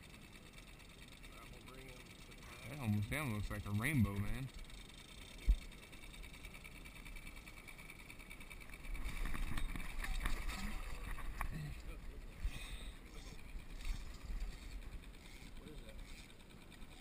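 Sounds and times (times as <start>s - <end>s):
low steady rumble: 0.0s - 17.0s.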